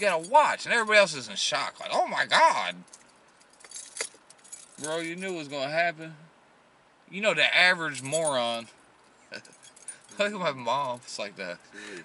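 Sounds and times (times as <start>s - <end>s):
faint light clinks and ticks: 2.8s - 5.7s, 7.9s - 12.0s.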